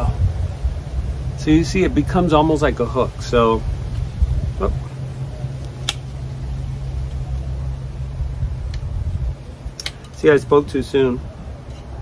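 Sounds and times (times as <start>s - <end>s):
low rumble: 0.0s - 9.8s.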